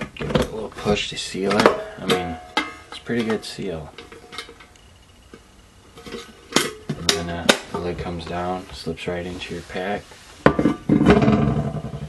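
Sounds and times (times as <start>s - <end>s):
sharp metal clanks: 1.4s - 5.4s.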